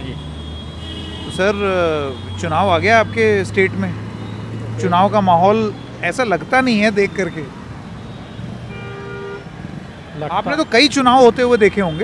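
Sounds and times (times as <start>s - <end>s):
road traffic rumble: 0.0s - 12.0s
vehicle horn toot: 0.1s - 2.5s, 8.1s - 9.5s.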